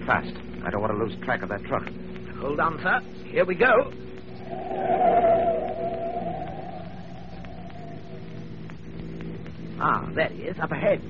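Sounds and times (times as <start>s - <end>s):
car engine hum: 3.9s - 11.0s
car tyres squealing: 4.3s - 9.0s.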